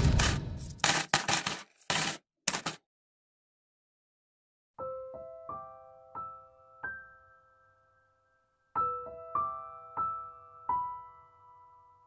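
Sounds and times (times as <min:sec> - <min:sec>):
coins clinking into a glass jar: 0:00.1 - 0:02.8.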